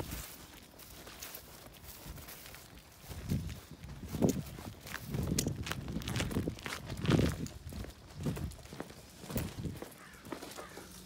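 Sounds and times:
footsteps on grass and dirt: 0.0 - 11.0.

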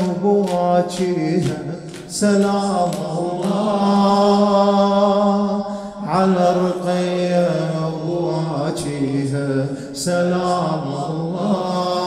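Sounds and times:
man chanting through amplifier: 0.0 - 12.0.

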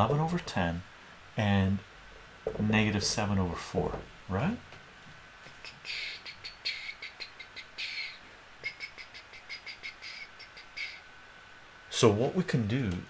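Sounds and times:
marker squeaking on whiteboard: 5.6 - 11.0.

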